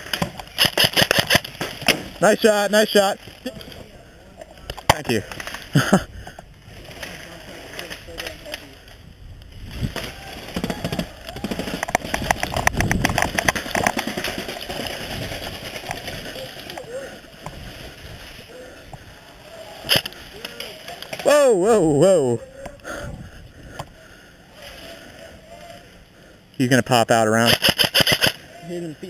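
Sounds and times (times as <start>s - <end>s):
rustling movement: 0.0s - 21.3s
person laughing: 5.7s - 6.4s
rapid clicks: 10.3s - 16.9s, 27.4s - 28.4s
faint distant voices: 22.2s - 26.7s.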